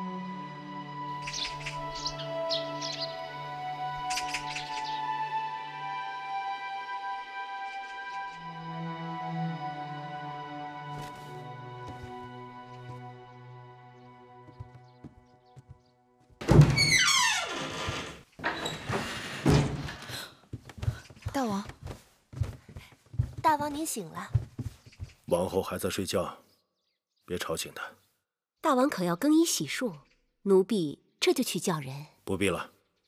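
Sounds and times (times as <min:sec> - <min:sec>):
soft music with held notes: 0:00.0 - 0:16.1
bird chirps: 0:01.2 - 0:03.2, 0:04.0 - 0:05.1
door creak falling in pitch: 0:16.4 - 0:20.2
wooden door thunk: 0:16.4 - 0:20.2.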